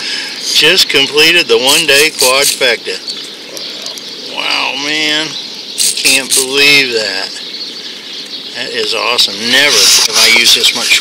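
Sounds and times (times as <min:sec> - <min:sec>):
man speaking: 0:00.0 - 0:07.4, 0:08.5 - 0:11.0.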